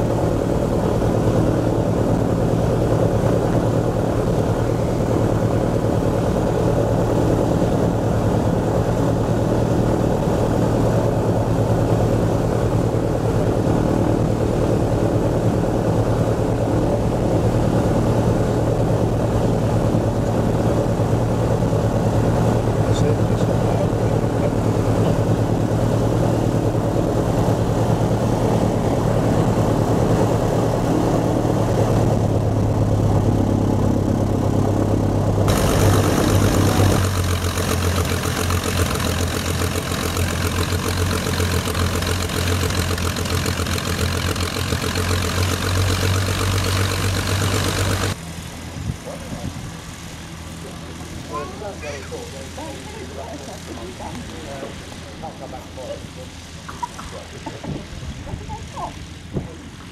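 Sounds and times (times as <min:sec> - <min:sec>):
propeller plane engine hum: 0:00.0 - 0:59.9.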